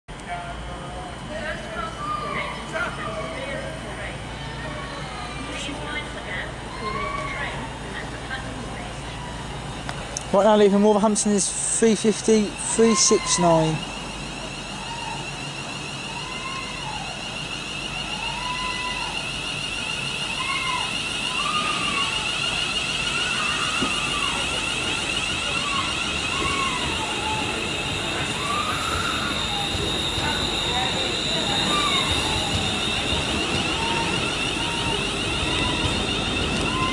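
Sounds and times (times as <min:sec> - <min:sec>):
electric train whine accelerating: 0:00.1 - 0:36.9.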